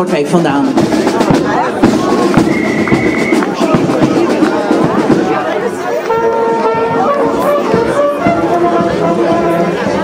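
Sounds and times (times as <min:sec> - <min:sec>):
band music with drumming: 0:00.0 - 0:10.0
crowd chatter: 0:00.0 - 0:10.0.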